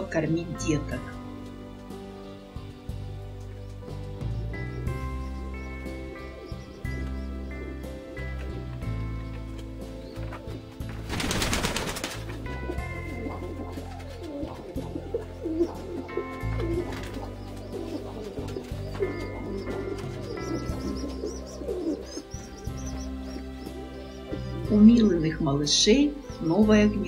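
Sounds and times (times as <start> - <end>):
soft instrumental music: 0.0 - 27.0
pigeons cooing: 4.2 - 27.0
rustling burst: 11.0 - 12.4.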